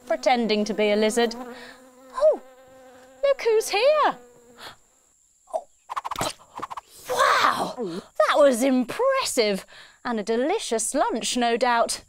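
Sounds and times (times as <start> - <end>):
cartoon clicks and smacks: 5.9 - 7.0.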